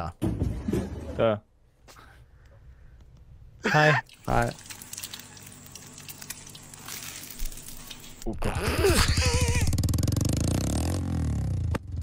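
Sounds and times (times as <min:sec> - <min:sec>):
motorcycle engine running: 0:08.9 - 0:12.0.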